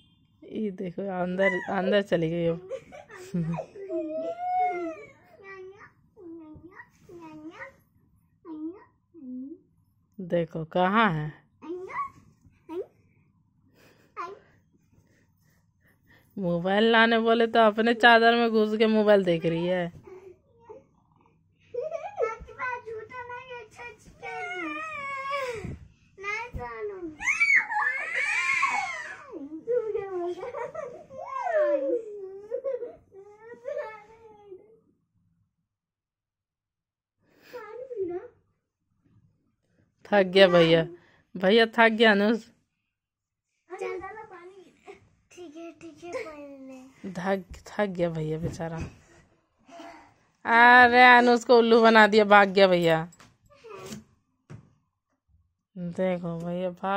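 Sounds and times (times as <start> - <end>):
child whining cry: 3.4 - 5.2, 24.2 - 25.7, 27.2 - 34.4, 49.7 - 50.2.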